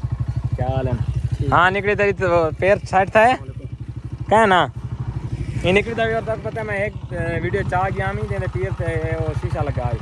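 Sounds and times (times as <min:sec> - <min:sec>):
engine running steadily: 0:00.0 - 0:10.0.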